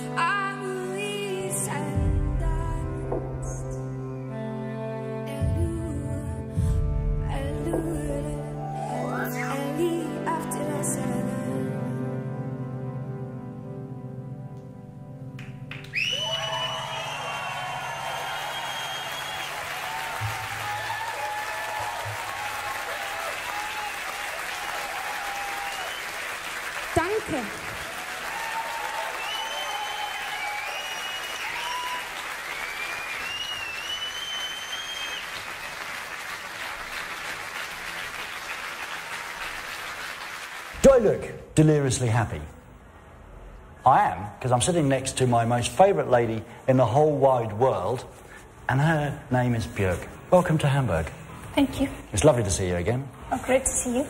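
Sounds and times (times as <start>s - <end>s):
slow song: 0.0s - 19.2s
audience clapping: 15.4s - 41.4s
high whistles: 15.8s - 19.9s, 25.6s - 26.3s, 29.0s - 35.8s
audience cheering: 15.8s - 40.7s.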